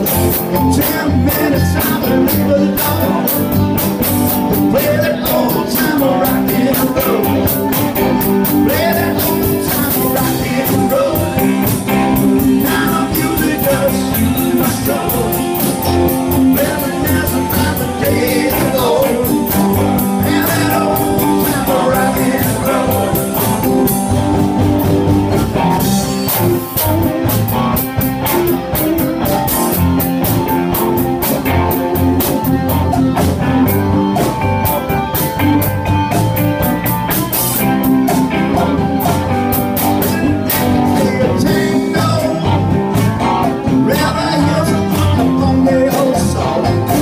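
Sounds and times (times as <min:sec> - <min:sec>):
drum kit: 0:00.0 - 0:47.0
electric guitars: 0:00.0 - 0:47.0.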